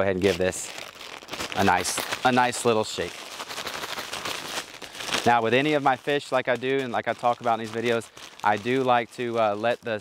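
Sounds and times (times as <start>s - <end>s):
fish shaken in plastic bag: 0.3s - 10.0s.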